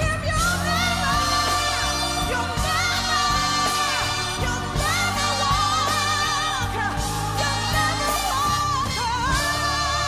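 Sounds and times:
gospel band playing: 0:00.0 - 0:10.0
woman singing with vibrato: 0:00.0 - 0:10.0.

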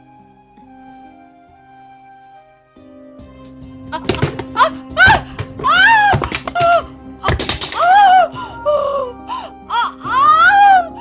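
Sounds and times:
background music: 0:00.0 - 0:11.0
heavy thuds on tiled floor: 0:04.0 - 0:07.7
woman crying out: 0:04.0 - 0:11.0.

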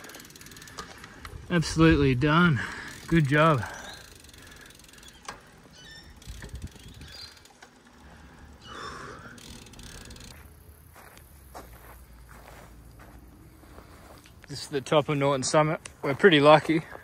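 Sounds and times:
bicycle freewheel ticking: 0:00.0 - 0:12.2
wind and tyre rumble: 0:00.0 - 0:17.0.

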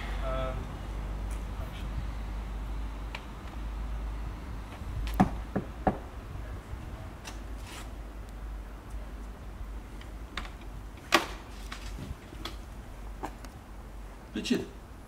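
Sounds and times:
steady low rumble: 0:00.0 - 0:15.0
knocks on wooden door: 0:05.2 - 0:06.0.

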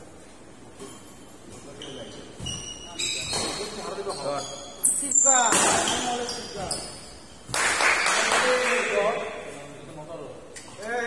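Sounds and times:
shoes squeaking on court: 0:00.8 - 0:07.5.

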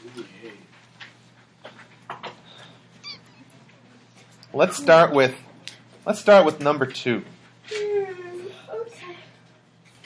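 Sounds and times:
short high squeak: 0:03.0 - 0:03.4.

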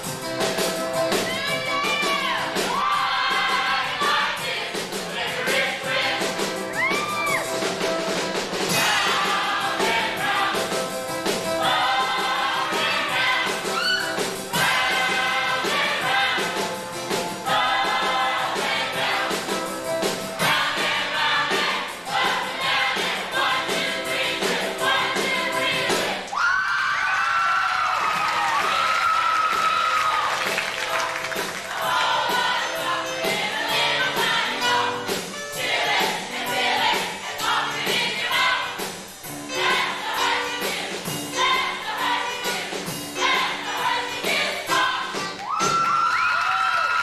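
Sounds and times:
group of voices singing: 0:01.3 - 0:07.4, 0:08.6 - 0:26.3, 0:30.2 - 0:45.4.

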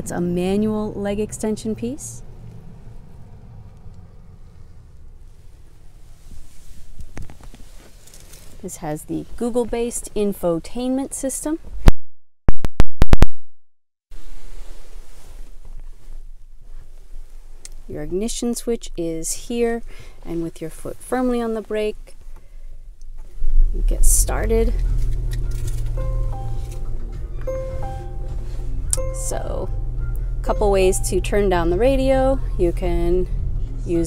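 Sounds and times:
steady low hum: 0:22.4 - 0:34.0
music from car audio system: 0:25.0 - 0:32.9.

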